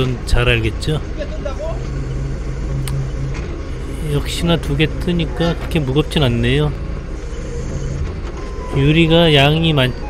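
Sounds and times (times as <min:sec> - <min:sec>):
forklift engine running: 0:00.0 - 0:10.0.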